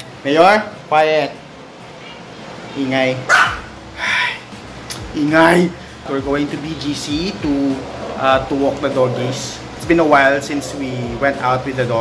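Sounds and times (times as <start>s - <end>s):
small dog barking: 3.3s - 3.7s.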